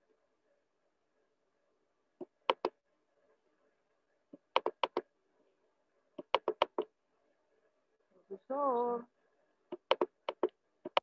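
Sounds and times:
sharp taps: 0:09.7 - 0:11.0.

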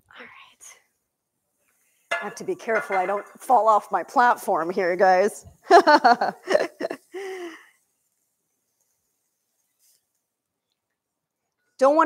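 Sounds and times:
woman laughing: 0:05.6 - 0:07.6.

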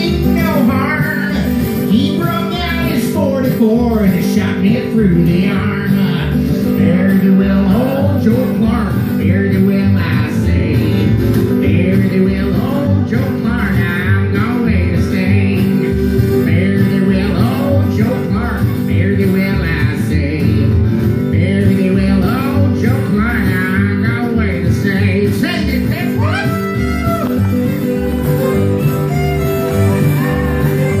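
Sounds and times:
acoustic guitar: 0:00.0 - 0:31.0
country band playing: 0:00.0 - 0:31.0.

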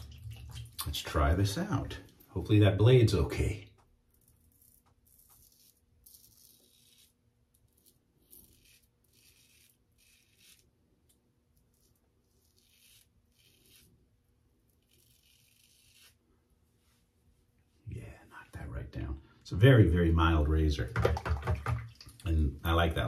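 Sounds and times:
razor scraping stubble: 0:04.1 - 0:10.8, 0:11.6 - 0:16.2.

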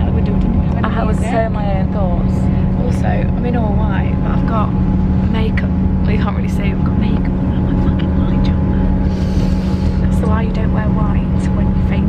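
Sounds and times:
women talking: 0:00.0 - 0:04.7, 0:05.3 - 0:12.0
train rumble and hum: 0:00.0 - 0:12.0.

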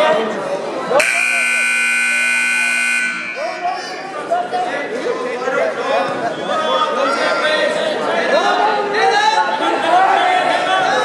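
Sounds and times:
scoreboard buzzer: 0:01.0 - 0:03.8.

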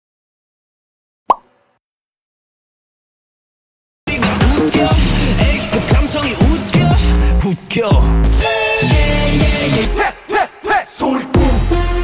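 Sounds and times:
rising pop sound effect: 0:01.3 - 0:01.5.

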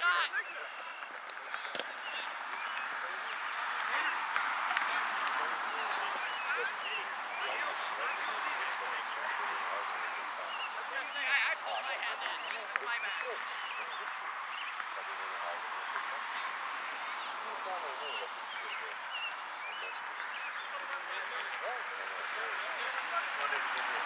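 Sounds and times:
crowd of voices chattering: 0:00.0 - 0:24.0.

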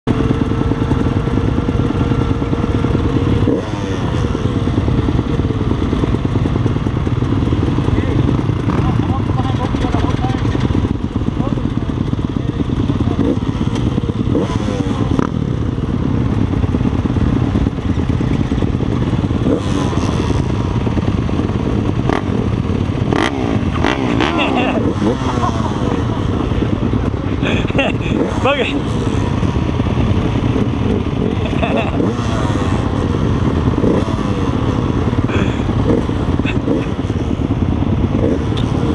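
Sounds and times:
motocross bikes revving: 0:00.1 - 0:38.9.

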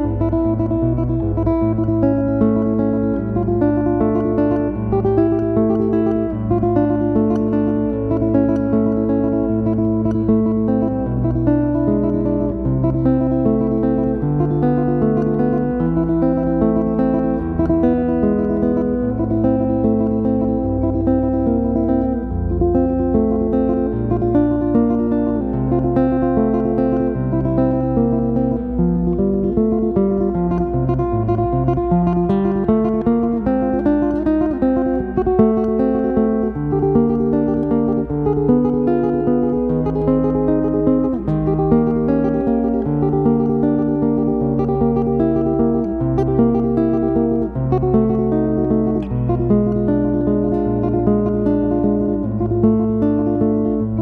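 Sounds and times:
acoustic guitar music: 0:00.0 - 0:54.0.

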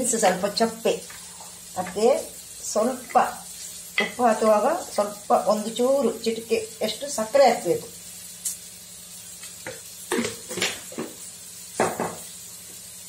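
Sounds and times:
vegetables sizzling in a pan: 0:00.0 - 0:13.0.

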